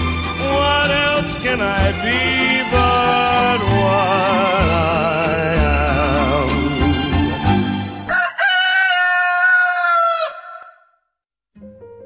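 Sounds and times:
rooster crowing: 8.1 - 11.0
faint instrumental music: 11.6 - 12.0.

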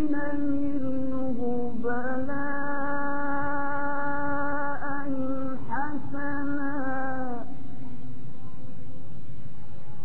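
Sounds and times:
noisy hall background: 0.0 - 10.0.

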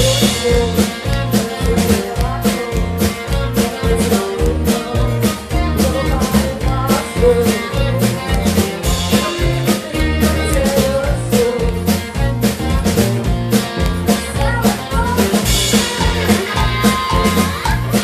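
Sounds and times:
drum kit beat: 0.0 - 18.0
rock band playing: 0.0 - 18.0.

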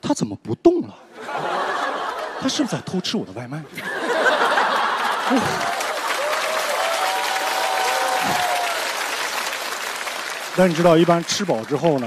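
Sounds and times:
audience applauding: 4.1 - 12.0.

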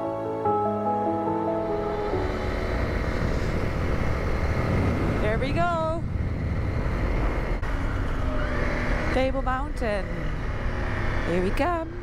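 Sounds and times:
wind noise on microphone: 2.2 - 9.6
motorcycle engine running: 2.2 - 12.0.

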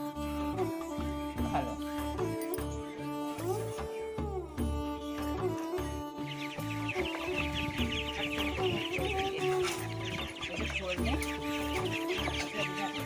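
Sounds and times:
background music with beat: 0.0 - 13.0
ducklings and chicks cheeping: 5.6 - 13.0.

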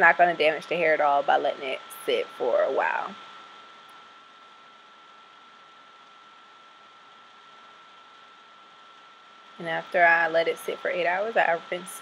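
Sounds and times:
faint high-pitched whine: 0.0 - 12.0
steady low hiss: 0.0 - 12.0.

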